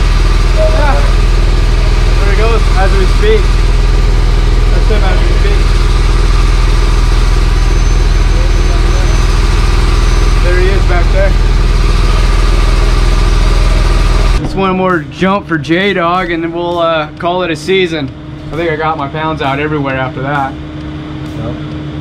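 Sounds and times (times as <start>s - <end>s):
air compressor engine running: 0.0s - 22.0s.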